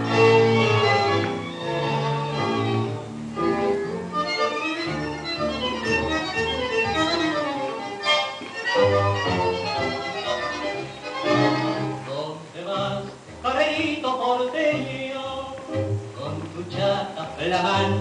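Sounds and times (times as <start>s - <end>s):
violins playing: 0.0s - 12.0s
instrumental tango music: 0.0s - 18.0s.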